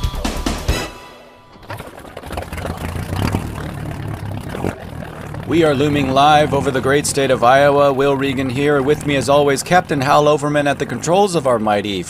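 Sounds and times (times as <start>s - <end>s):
propeller engines droning: 1.6s - 12.0s.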